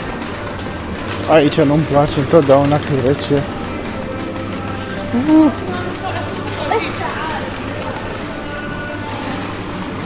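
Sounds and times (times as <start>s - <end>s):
background music: 0.0s - 10.0s
indistinct voices: 1.3s - 10.0s.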